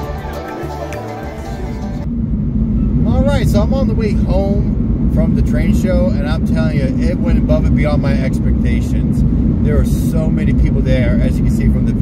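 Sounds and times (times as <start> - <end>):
background music: 0.0 - 2.1.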